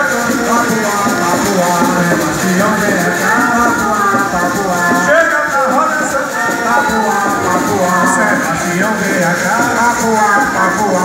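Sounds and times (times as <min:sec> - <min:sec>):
fiddle sliding melody: 0:00.0 - 0:11.0
shaker rhythm: 0:00.0 - 0:11.0.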